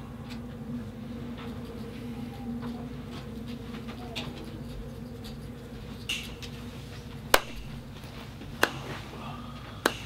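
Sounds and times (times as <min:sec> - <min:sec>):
low buzzing hum: 0:00.0 - 0:10.0.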